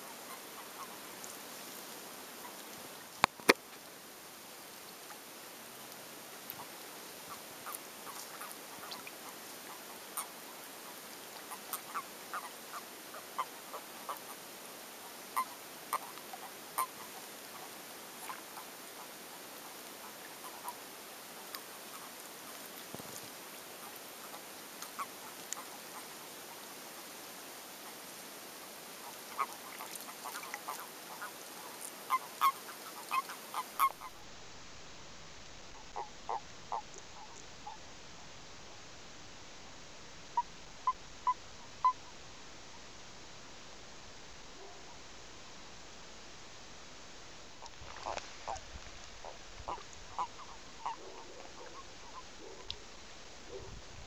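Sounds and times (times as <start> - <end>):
toads croaking: 0.0 - 1.2, 6.5 - 26.2, 28.9 - 34.3, 35.7 - 37.8, 40.3 - 42.2, 47.6 - 53.8
steady hiss: 0.0 - 54.0.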